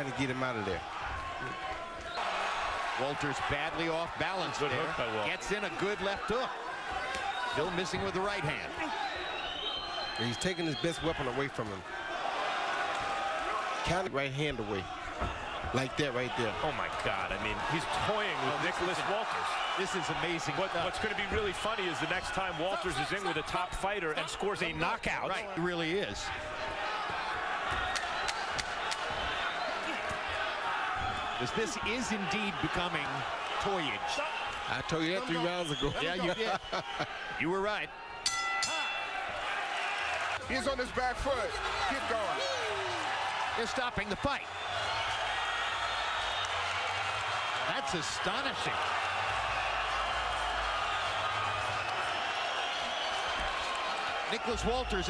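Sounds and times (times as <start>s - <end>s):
boxing ring bell ringing: 38.3s - 39.3s.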